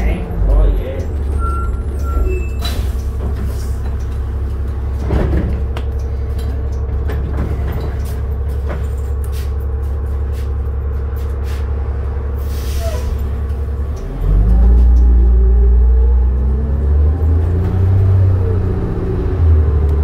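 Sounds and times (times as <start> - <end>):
bus engine drone: 0.0 - 20.0.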